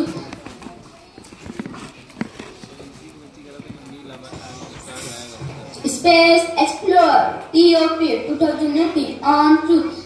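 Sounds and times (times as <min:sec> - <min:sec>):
footsteps on a stage: 0:00.0 - 0:06.0.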